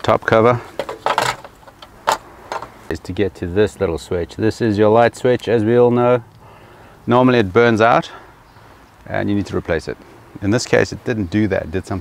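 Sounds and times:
plastic shroud rustling clatter: 0.7s - 2.8s.

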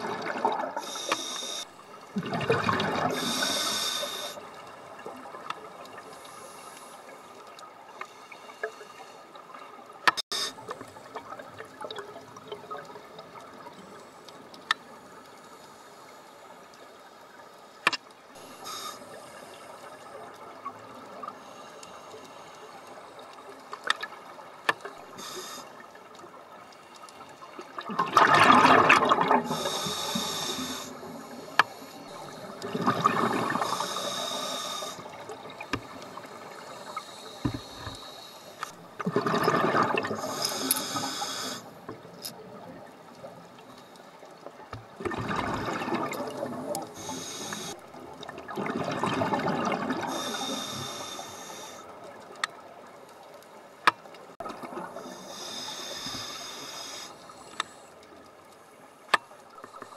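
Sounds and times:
bubbles exhaled underwater: 0.0s - 1.0s, 2.0s - 6.1s, 27.6s - 31.5s, 32.2s - 38.0s, 39.0s - 41.0s, 44.8s - 47.1s, 47.8s - 50.7s
regulator inhalation hiss: 0.8s - 1.7s, 3.2s - 4.4s, 18.4s - 20.0s, 25.1s - 25.8s, 29.5s - 32.6s, 33.4s - 35.2s, 36.3s - 38.8s, 40.2s - 41.8s, 47.0s - 47.8s, 50.1s - 51.9s, 55.0s - 57.9s.

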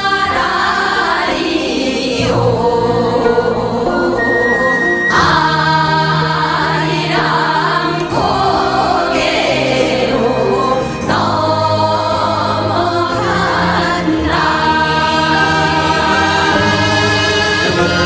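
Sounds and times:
choir singing slow chords: 0.0s - 18.0s.

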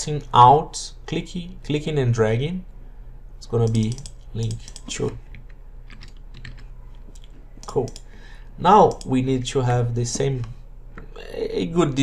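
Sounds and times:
computer keyboard typing: 3.6s - 8.1s.

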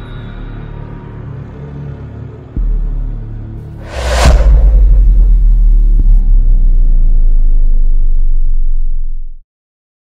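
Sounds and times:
deep rumbling bass drone: 2.6s - 9.4s
low hit: 3.8s - 8.3s.

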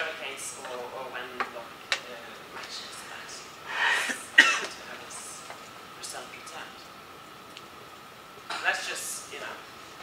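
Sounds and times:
person coughing: 4.0s - 4.7s.

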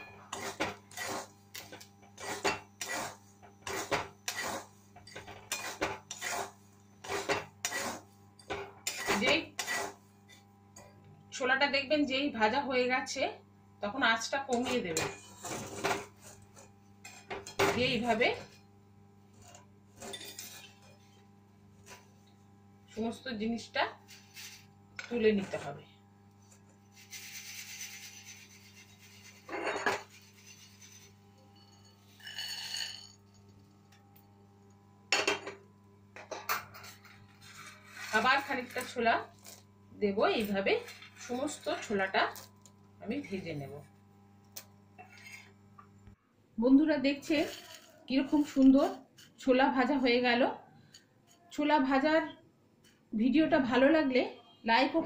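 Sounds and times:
metal spatula scraping metal pan: 5.5s - 8.1s, 8.9s - 10.0s, 15.0s - 16.4s, 26.9s - 33.2s, 36.8s - 39.2s
skimmer scraping through salt: 26.9s - 31.2s, 37.3s - 39.0s.

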